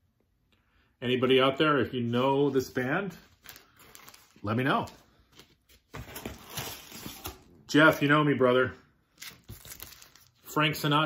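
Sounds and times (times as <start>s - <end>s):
paper and cardboard rustling: 2.6s - 7.9s.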